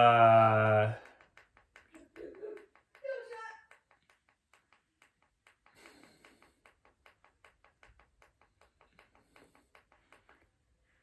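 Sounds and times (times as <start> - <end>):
faint rapid light tapping: 0.6 - 11.0.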